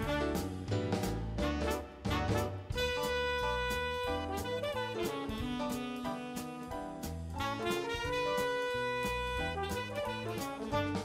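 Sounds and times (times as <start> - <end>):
bass: 0.0 - 11.0
drums: 0.0 - 11.0
saxophone jazz solo: 0.0 - 11.0.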